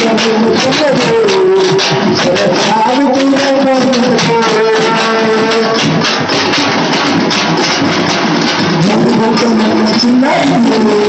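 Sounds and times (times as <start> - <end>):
barrel drums pounding: 0.0 - 11.0.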